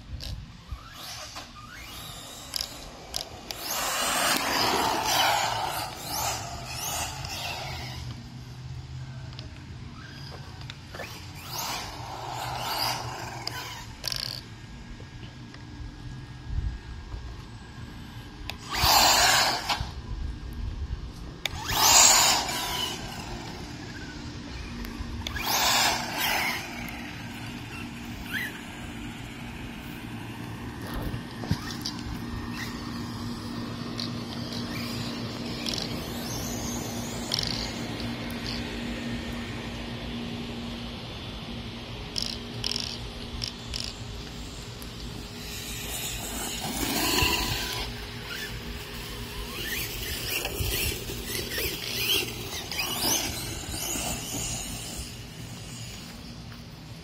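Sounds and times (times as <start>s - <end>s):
tyres on asphalt and grass: 0.0s - 57.0s
electric motor whining: 0.2s - 14.5s, 18.5s - 20.1s, 21.4s - 39.7s, 42.1s - 56.6s.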